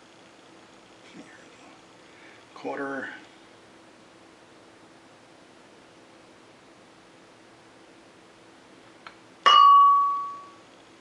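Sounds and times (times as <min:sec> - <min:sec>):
faint room hum: 0:00.0 - 0:11.0
glass clink ringing: 0:09.4 - 0:10.6.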